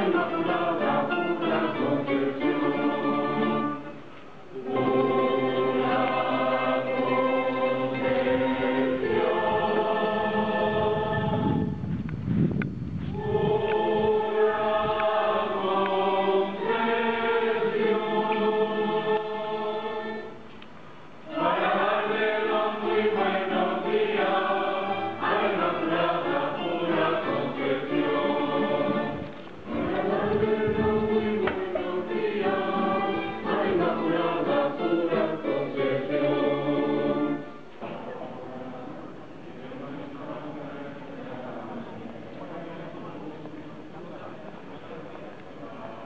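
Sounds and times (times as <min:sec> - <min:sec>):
choir singing a hymn: 0:00.0 - 0:11.8, 0:13.1 - 0:20.5, 0:21.2 - 0:46.0.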